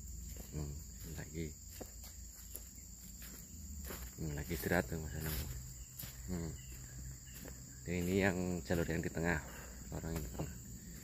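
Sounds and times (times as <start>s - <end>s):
high-pitched insect chorus: 0.0s - 11.0s
soft footsteps on dry ground: 0.0s - 11.0s.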